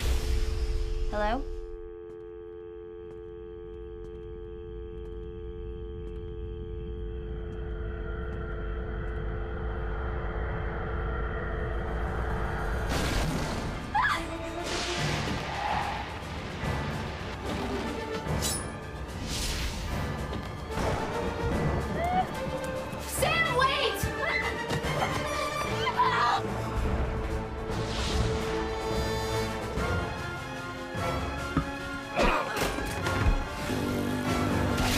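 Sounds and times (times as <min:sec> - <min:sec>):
droning chord: 0:01.8 - 0:11.4
low rumble: 0:04.2 - 0:17.5.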